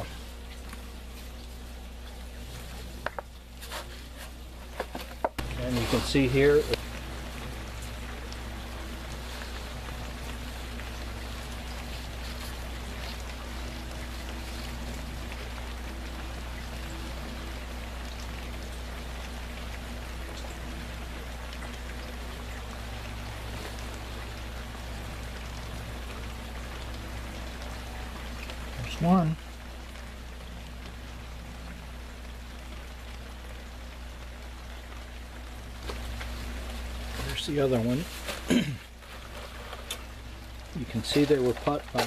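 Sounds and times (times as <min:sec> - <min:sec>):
low steady hum: 0:00.0 - 0:42.0
water hissing: 0:05.4 - 0:30.2.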